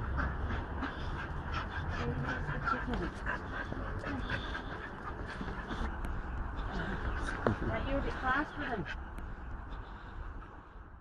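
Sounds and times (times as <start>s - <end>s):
dog panting and whimpering: 0.0s - 9.1s.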